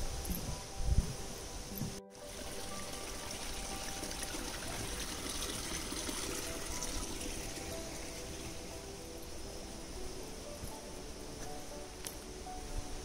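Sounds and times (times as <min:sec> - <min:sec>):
stream trickling: 0:00.0 - 0:13.0.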